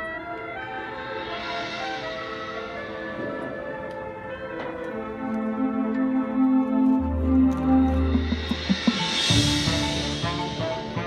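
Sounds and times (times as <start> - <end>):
marching band held notes: 0.0 - 11.0.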